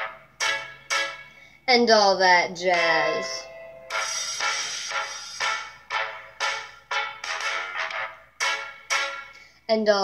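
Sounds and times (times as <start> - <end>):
short accented band chords: 0.0 - 1.4, 2.7 - 9.4.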